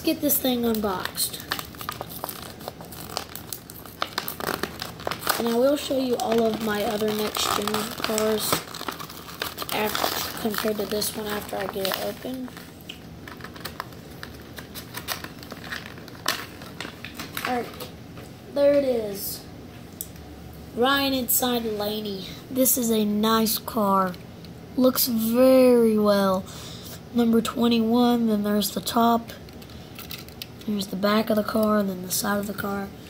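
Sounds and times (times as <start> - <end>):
plastic packaging crinkling: 0.0 - 17.9, 29.4 - 31.6.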